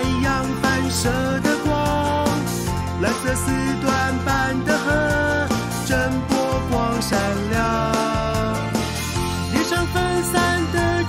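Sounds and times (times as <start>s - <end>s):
bouncy instrumental backing: 0.0s - 11.0s
person singing cartoon song: 9.5s - 11.0s.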